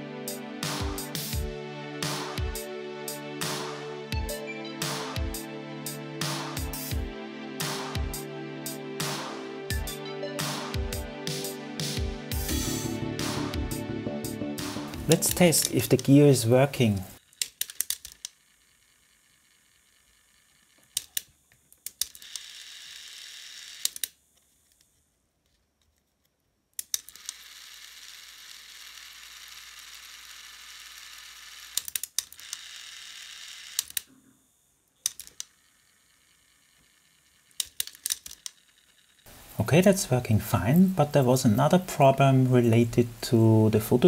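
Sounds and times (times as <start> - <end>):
plastic mechanism clicks and clacks: 17.2 - 18.4, 20.8 - 22.4, 23.8 - 24.1, 31.8 - 32.6, 33.8 - 34.1, 35.0 - 35.5, 37.5 - 39.3
small motor and gears whirring: 17.2 - 26.1, 26.8 - 39.4.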